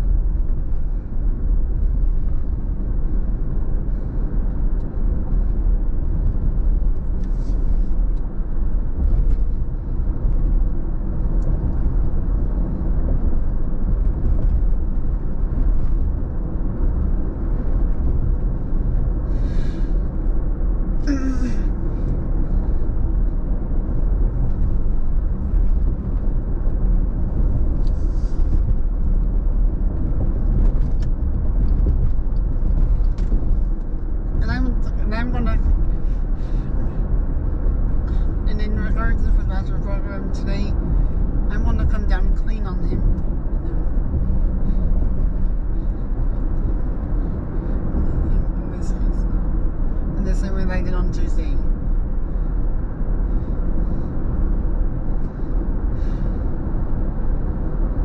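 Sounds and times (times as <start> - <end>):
car cabin road and engine rumble: 0.0 - 58.0
person speaking: 34.4 - 35.7.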